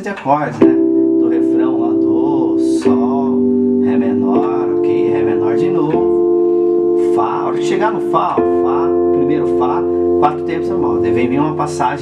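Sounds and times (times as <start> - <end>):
guitar: 0.5 - 12.0
synthesizer playing held chords: 0.6 - 12.0
voice-like sounds: 10.6 - 12.0.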